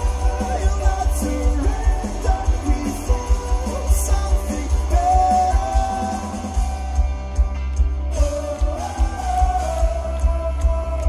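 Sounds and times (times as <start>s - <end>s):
bass guitar: 0.0s - 11.0s
drums: 0.0s - 11.0s
electric guitars: 0.0s - 11.0s.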